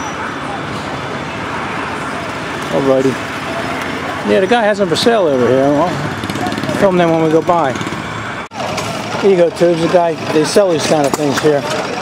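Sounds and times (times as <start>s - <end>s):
background chatter: 0.0s - 12.0s
small car engines running: 0.0s - 12.0s.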